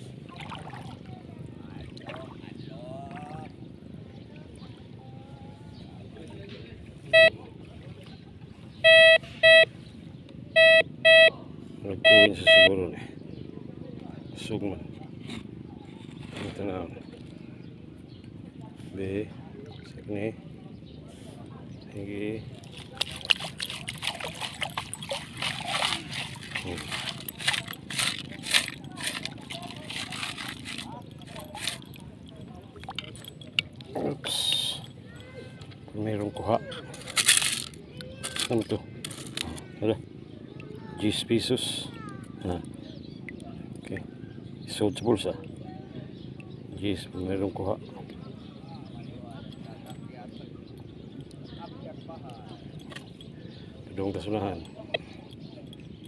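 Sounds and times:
water sloshing and draining: 0.3s - 2.5s, 22.5s - 33.9s
metal detector beeps: 7.1s - 7.3s, 8.8s - 9.7s, 10.6s - 11.3s, 12.0s - 12.7s
pebbles rattling against metal: 22.6s - 33.7s, 36.9s - 39.6s.

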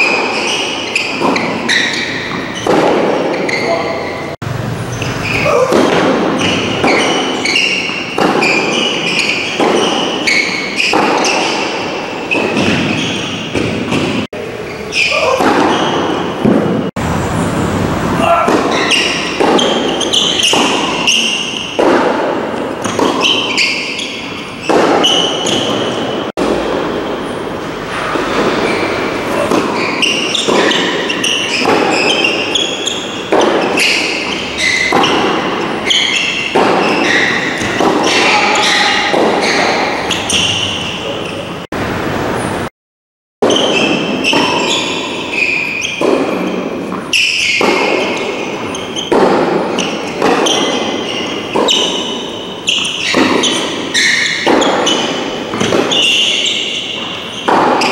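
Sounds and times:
ball bouncing on hard court: 0.0s - 4.0s, 4.9s - 14.3s, 14.9s - 16.9s, 18.2s - 27.0s, 27.9s - 41.0s, 43.4s - 57.9s
racquet striking tennis ball: 0.0s - 4.2s, 4.9s - 14.3s, 14.9s - 17.1s, 18.1s - 41.3s, 43.4s - 57.9s.

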